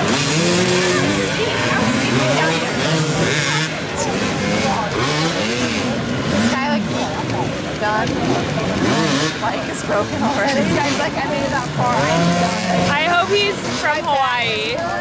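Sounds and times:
dirt-bike engines revving: 0.0s - 15.0s.

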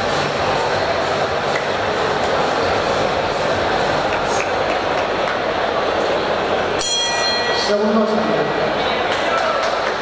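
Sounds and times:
crowd hubbub: 0.0s - 10.0s.

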